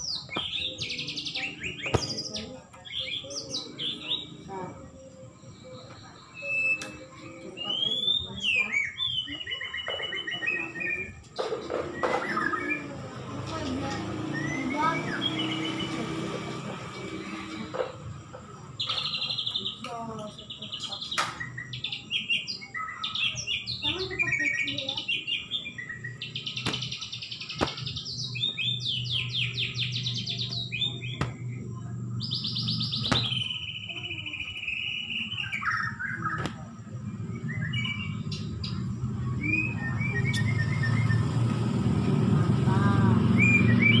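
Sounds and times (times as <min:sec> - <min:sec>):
bird singing chips and trills: 0:00.0 - 0:41.8, 0:43.1 - 0:44.0
background chatter: 0:00.0 - 0:44.0.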